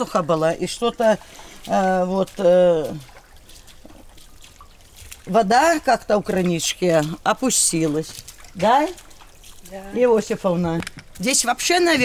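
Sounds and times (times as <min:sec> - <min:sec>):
small water drips: 0:00.0 - 0:12.0
spring water trickling: 0:00.0 - 0:12.0.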